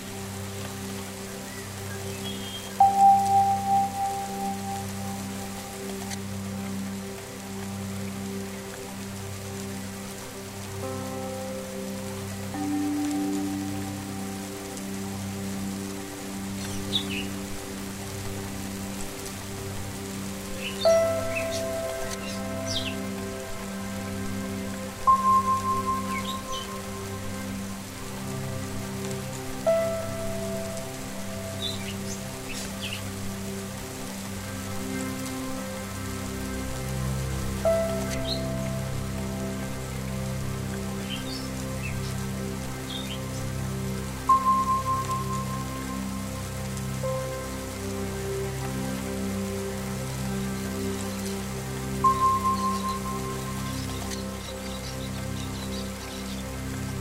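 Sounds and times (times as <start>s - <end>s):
rain pattering: 0.0s - 57.0s.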